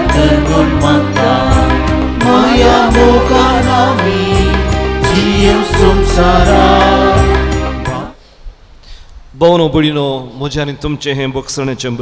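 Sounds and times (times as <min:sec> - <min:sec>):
church music: 0:00.0 - 0:08.2.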